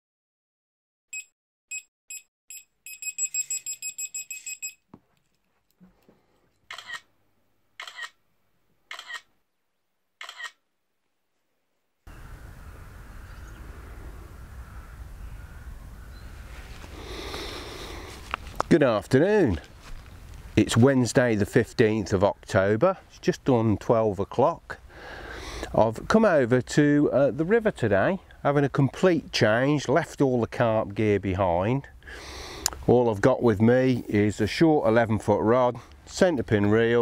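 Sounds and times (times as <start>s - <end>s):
short electronic beeps: 1.1s - 4.8s
camera shutter clicks: 6.7s - 7.1s, 7.8s - 8.2s, 8.9s - 9.3s, 10.2s - 10.6s.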